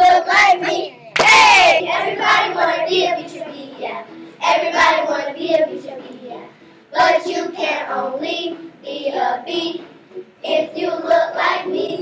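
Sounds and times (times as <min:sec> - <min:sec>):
children singing together: 0:00.0 - 0:12.0.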